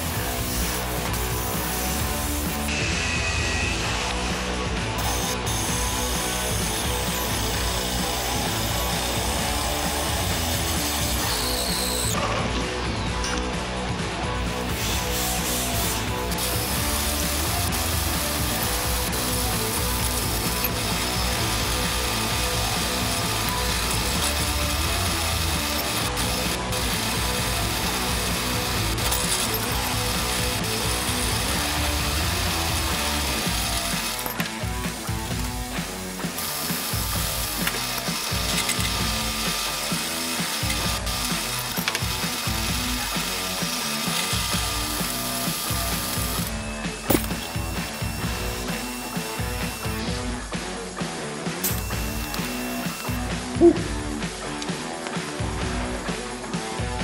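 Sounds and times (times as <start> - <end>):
drill press cutting metal: 0.0 - 12.4, 14.5 - 50.3, 51.6 - 53.6.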